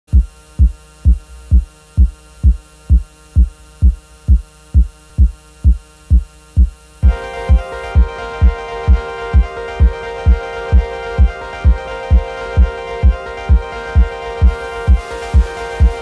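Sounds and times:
faint steady hum: 0:00.1 - 0:16.0
sustained synth drone: 0:00.1 - 0:16.0
synthesized kick drum beating: 0:00.1 - 0:16.0.

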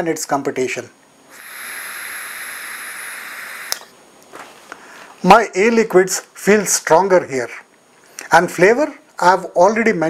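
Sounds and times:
airy hiss of vape draw: 0:01.3 - 0:03.9
sharp click: 0:03.6 - 0:04.0.

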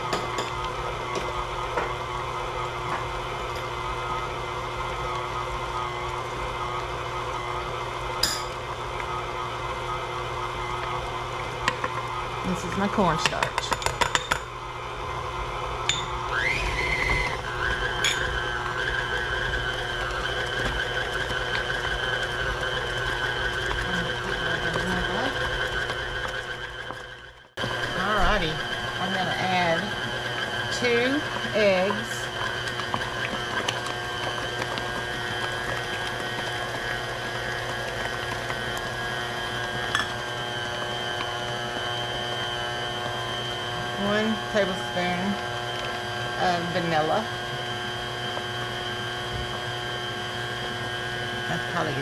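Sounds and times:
stand mixer motor humming: 0:00.0 - 0:52.0.

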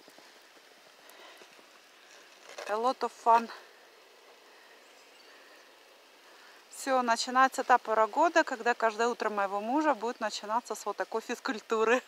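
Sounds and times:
soft crunches of snow: 0:00.0 - 0:12.0.

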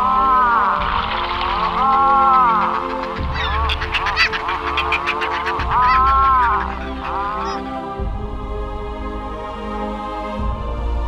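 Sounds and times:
seabird calls: 0:00.0 - 0:08.0
soft background music: 0:00.0 - 0:11.0.

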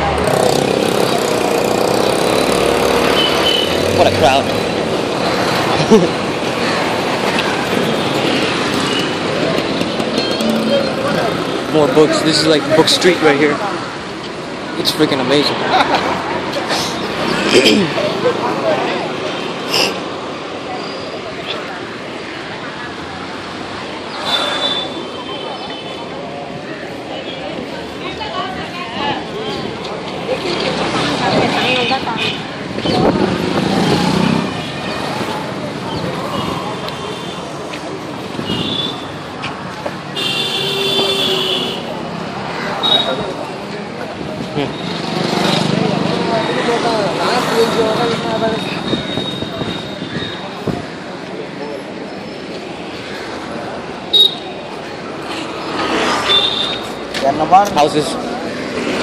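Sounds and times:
vehicle engine: 0:00.0 - 0:12.8, 0:32.8 - 0:38.4, 0:41.9 - 0:48.9
street traffic noise: 0:00.0 - 0:59.0
people talking: 0:42.8 - 0:52.0.

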